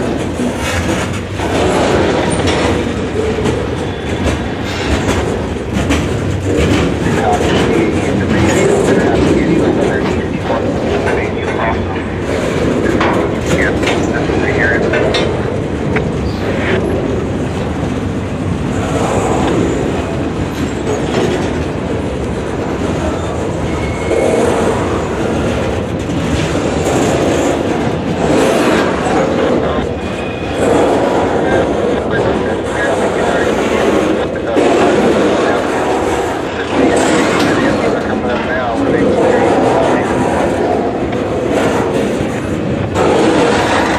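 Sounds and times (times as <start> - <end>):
freight train wheels rumbling: 0.0 - 43.9
wheels clicking over rail joints: 0.0 - 43.9.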